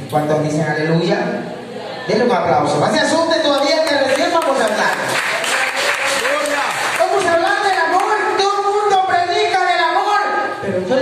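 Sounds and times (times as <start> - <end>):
congregation applauding: 3.5 - 8.4.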